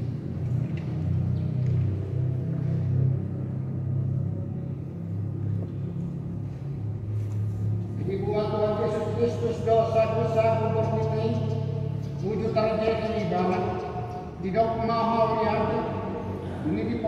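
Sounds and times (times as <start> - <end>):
keyboard playing low chords: 0.0 - 17.0.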